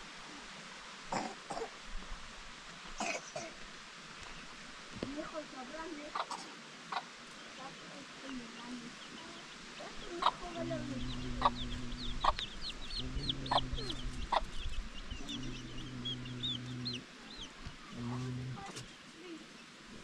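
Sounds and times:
hen clucking: 5.8s - 19.0s
rapid high chirps: 10.0s - 17.0s
low held sounds: 10.4s - 19.0s.

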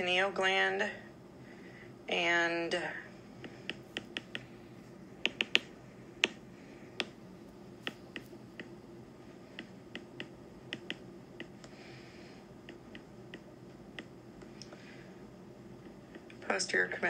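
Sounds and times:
stylus tapping on glass screen: 3.4s - 4.5s, 5.2s - 6.4s, 7.0s - 7.2s, 9.6s - 11.5s.

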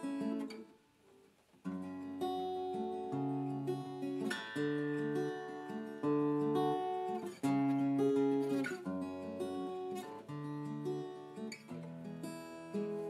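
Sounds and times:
acoustic guitar chords: 0.0s - 1.0s, 1.6s - 13.0s.

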